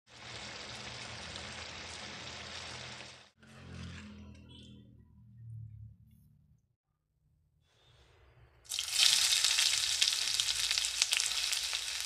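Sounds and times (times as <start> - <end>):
curry sizzling in a frying pan: 0.1 - 3.3, 8.7 - 12.0.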